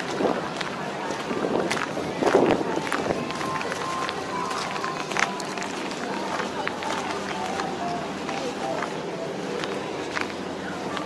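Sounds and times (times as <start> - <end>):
footsteps on gravel: 0.0 - 11.0
indistinct background voices: 0.0 - 11.0.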